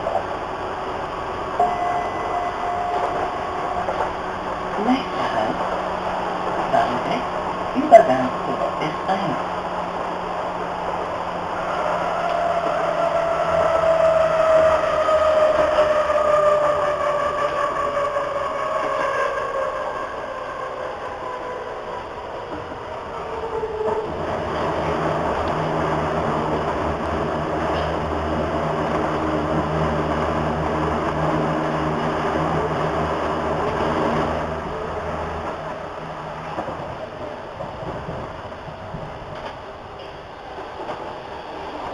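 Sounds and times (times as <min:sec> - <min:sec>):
train motor whine: 0:00.0 - 0:06.6, 0:09.8 - 0:38.2
train rumbling on rails: 0:00.0 - 0:41.9.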